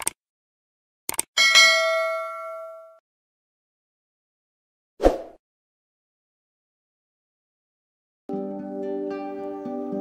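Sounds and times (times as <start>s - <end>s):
notification bell ding: 1.4s - 3.0s.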